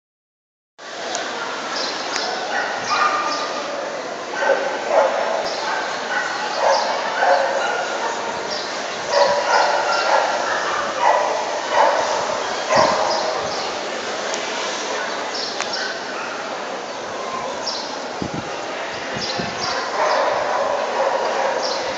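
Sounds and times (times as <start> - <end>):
dog barking: 2.5 - 3.5, 4.4 - 8.3, 9.1 - 13.5, 19.8 - 21.9.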